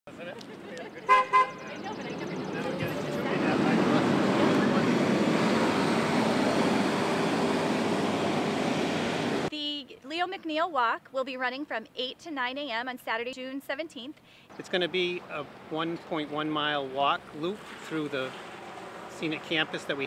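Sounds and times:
voices: 0.1s - 5.2s
traffic noise: 0.1s - 9.5s, 14.2s - 20.0s
vehicle horn toots: 1.1s - 1.6s.

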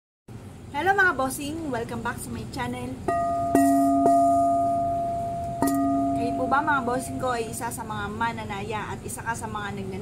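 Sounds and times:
singing bowl ringing: 3.1s - 7.8s.

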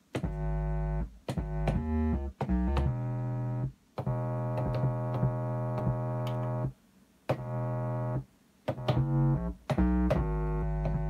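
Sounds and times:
chopped keyboard chords: 0.0s - 6.7s, 7.3s - 11.0s.

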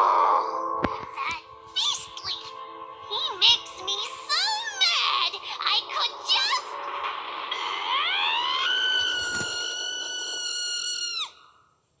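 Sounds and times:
cartoon character screaming: 7.6s - 11.5s.

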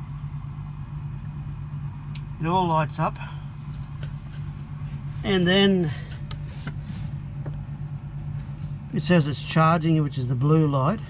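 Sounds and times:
low machine hum: 0.0s - 11.0s
person speaking: 5.2s - 6.3s.

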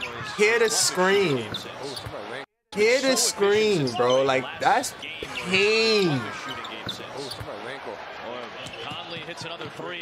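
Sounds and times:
commentator talking: 2.7s - 7.7s.

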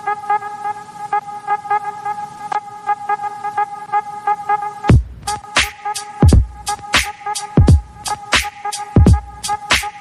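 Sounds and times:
fast ticking beat: 4.9s - 10.0s.

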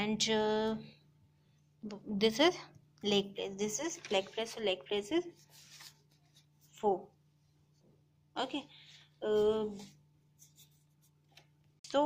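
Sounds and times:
paper cards rustling on cloth: 3.6s - 6.8s
soft short scratches: 9.7s - 11.5s.

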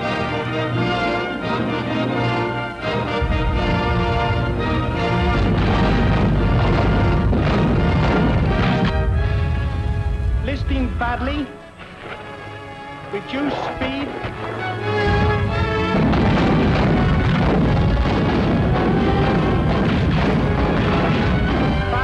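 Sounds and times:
orchestral music with brass: 0.0s - 22.0s
loud low rumble with booms: 2.8s - 22.0s.

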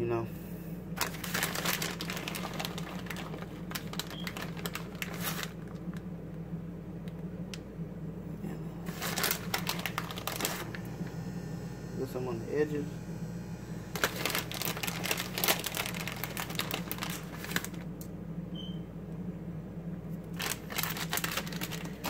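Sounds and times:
steady low hum: 0.0s - 22.0s
plastic bag crinkling: 1.0s - 6.1s, 8.8s - 10.8s, 13.9s - 17.9s, 20.2s - 22.0s.

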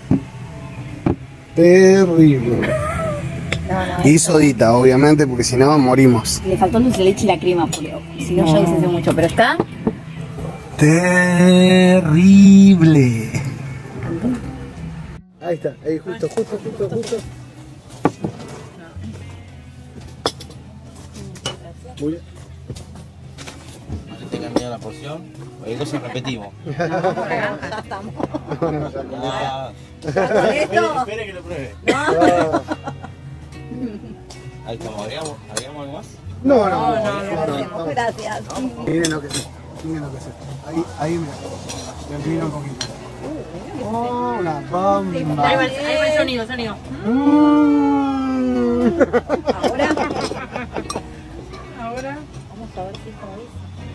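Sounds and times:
background music: 0.0s - 53.9s
murmur of voices: 0.0s - 53.9s
voices: 1.5s - 15.2s
person humming mmm: 10.8s - 14.5s, 47.0s - 48.8s.

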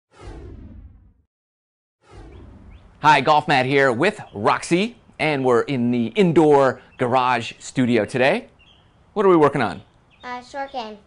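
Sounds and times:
downward whoosh: 0.1s - 1.1s, 2.0s - 4.6s.

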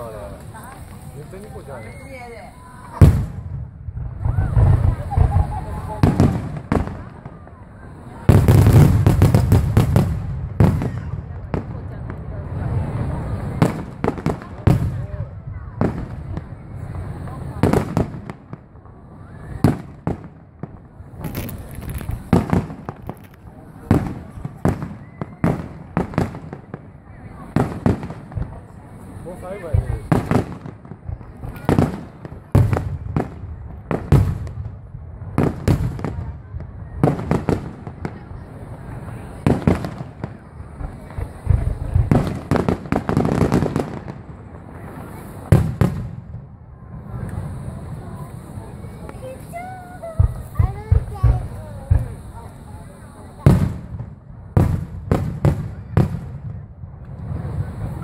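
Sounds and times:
firework shells bursting: 19.6s - 28.8s.

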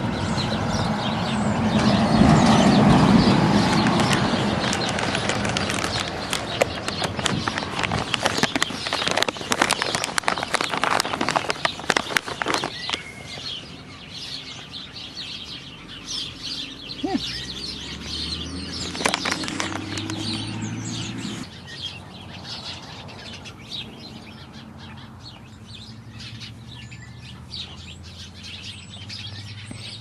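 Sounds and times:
small birds chirping: 0.0s - 30.0s.

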